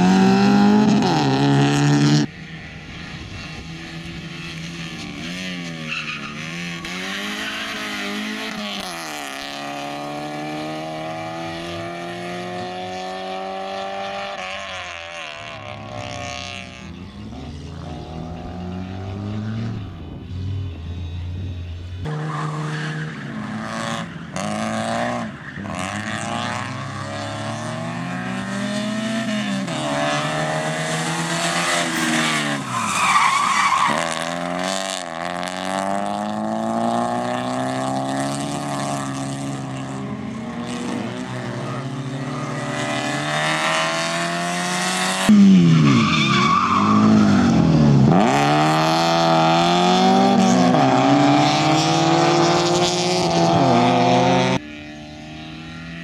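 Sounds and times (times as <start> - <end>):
car engine revving: 0.0 - 2.4, 15.2 - 56.0.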